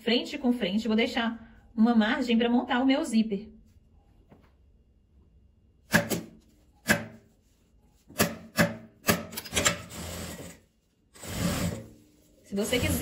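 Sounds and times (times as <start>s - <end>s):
fabric rubbing and sliding: 10.2s - 13.0s.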